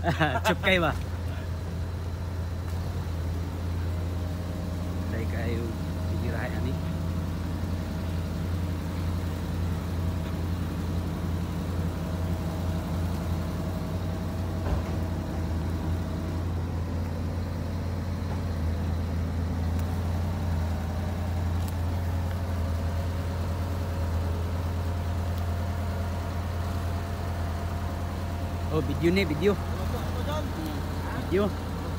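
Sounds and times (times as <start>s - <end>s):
diesel engine idling: 0.0s - 31.9s.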